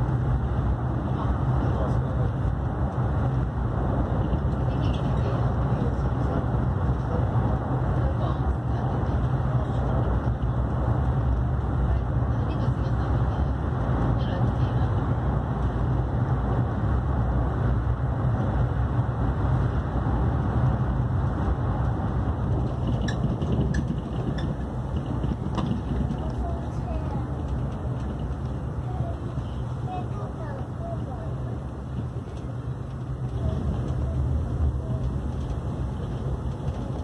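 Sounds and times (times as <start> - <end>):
train wheels rumbling: 0.0 - 37.0.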